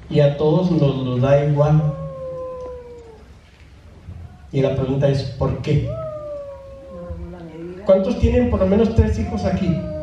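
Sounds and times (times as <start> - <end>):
dog howling: 1.6 - 3.4, 5.7 - 10.0.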